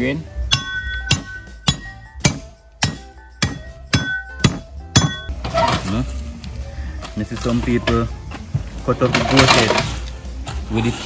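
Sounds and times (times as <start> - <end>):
sharp metallic strikes: 0.5 - 5.3.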